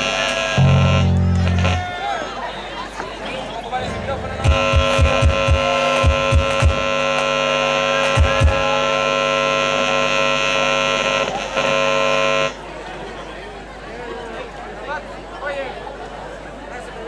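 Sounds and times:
accordion sustained chord: 0.0 - 2.5, 3.6 - 12.6
electric bass low notes: 0.6 - 2.2, 3.8 - 7.0.

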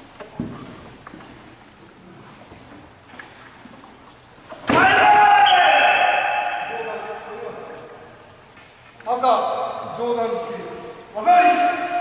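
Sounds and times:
loud drawn-out shout: 4.7 - 7.3.

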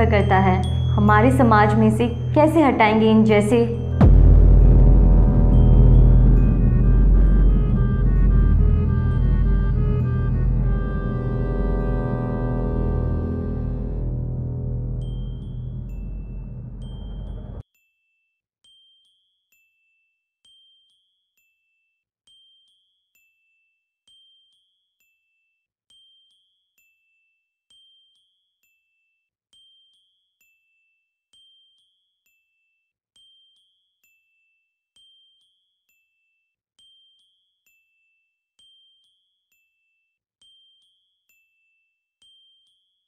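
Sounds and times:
high bell-like chimes: 0.0 - 4.8, 14.3 - 17.6
quiet high chime notes: 5.4 - 17.6.

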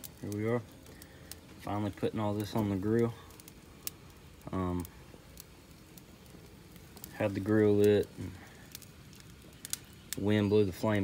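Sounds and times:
gas grill hissing: 0.0 - 11.0.

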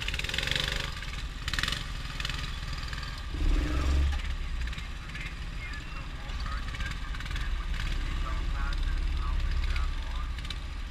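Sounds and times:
go-kart engines running: 0.0 - 10.9
faint voices: 3.4 - 10.4.

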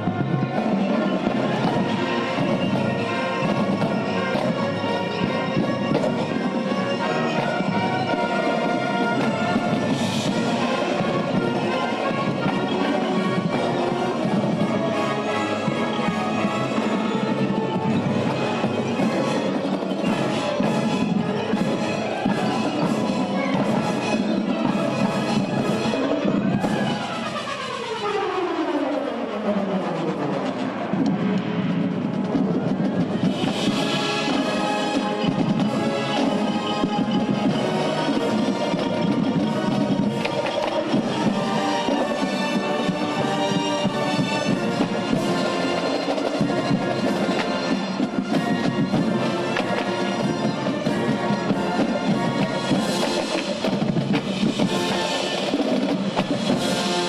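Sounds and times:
marching band playing: 0.0 - 57.0.

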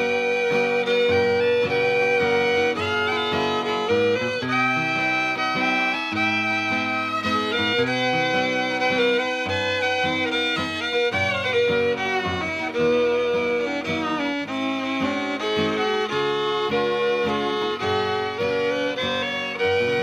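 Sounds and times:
acoustic guitar strumming: 0.0 - 20.0
fiddle melody: 0.0 - 20.0.

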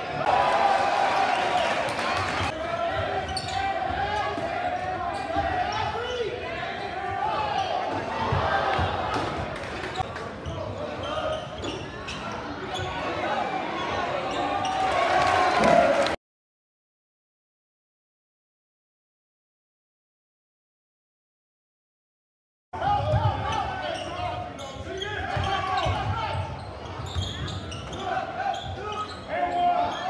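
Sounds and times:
crowd chatter: 0.0 - 16.2.

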